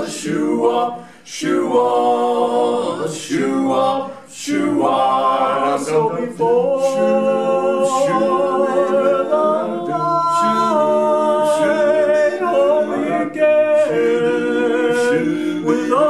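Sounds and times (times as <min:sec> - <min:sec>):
male quartet singing a cappella: 0:00.0 - 0:16.0.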